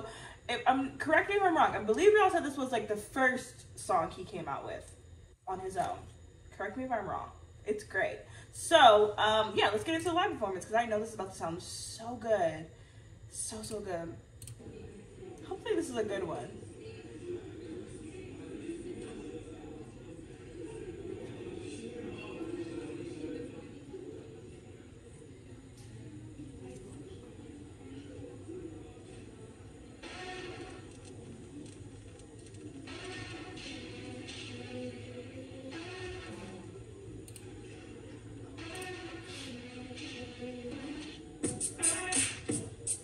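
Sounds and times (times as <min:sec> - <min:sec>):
muffled music from speakers: 0:13.4 - 0:43.0.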